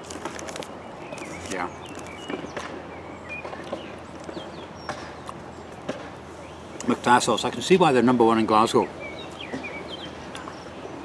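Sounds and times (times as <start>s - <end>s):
birds chirping: 0.0s - 11.0s
steady outdoor hum: 0.0s - 11.0s.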